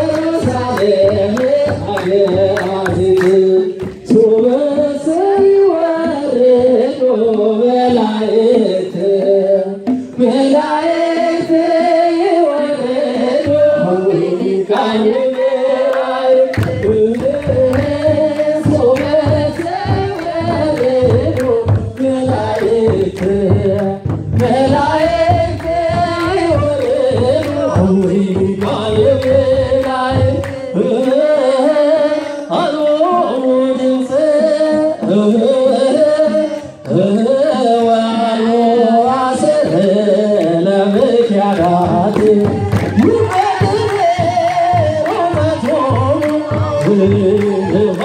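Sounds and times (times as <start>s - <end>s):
congregation singing a hymn: 0.0s - 48.0s
rhythmic hand clapping: 0.0s - 48.0s
steady percussion beat: 0.0s - 48.0s.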